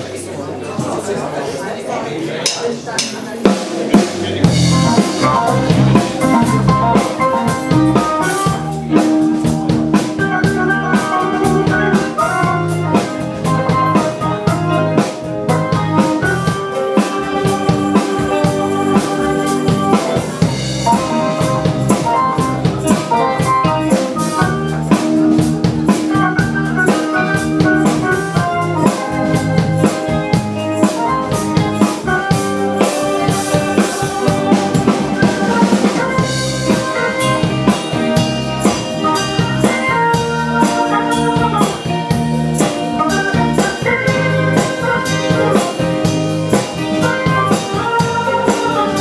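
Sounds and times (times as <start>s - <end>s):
live band playing: 0.0s - 49.0s
drum kit beat: 2.4s - 49.0s.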